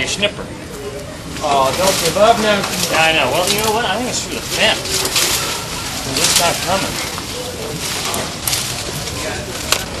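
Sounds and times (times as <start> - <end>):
people's voices: 0.0 - 10.0.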